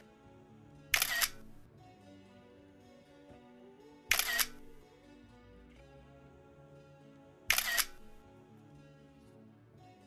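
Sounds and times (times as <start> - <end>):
quiet background music: 0.0 - 10.0
camera shutter double click: 1.0 - 1.6, 4.1 - 4.8, 7.5 - 8.2.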